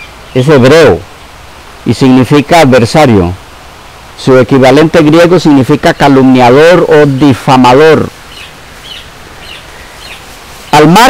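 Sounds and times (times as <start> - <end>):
bird chirping faintly: 0.0 - 1.4, 8.2 - 11.0
room noise hiss: 0.0 - 11.0.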